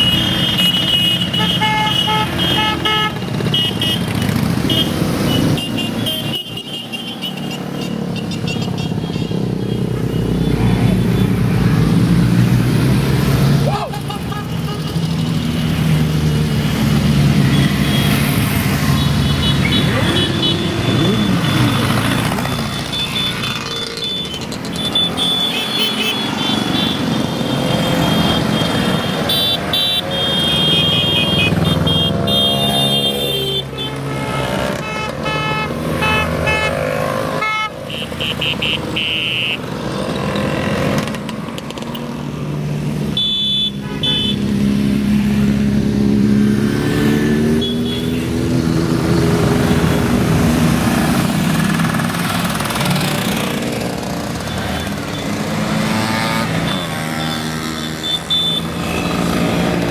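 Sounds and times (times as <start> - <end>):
horns beeping: 0.0 - 11.6, 17.0 - 40.8, 43.1 - 44.6, 47.2 - 59.9
motorcycles riding past: 0.0 - 39.0, 44.4 - 59.9
motor scooters passing: 0.0 - 43.1, 44.1 - 59.9.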